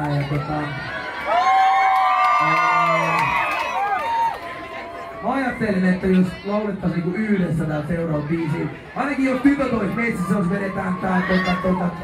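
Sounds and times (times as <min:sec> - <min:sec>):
crowd screaming and cheering: 0:00.0 - 0:12.0
man's voice: 0:05.2 - 0:12.0.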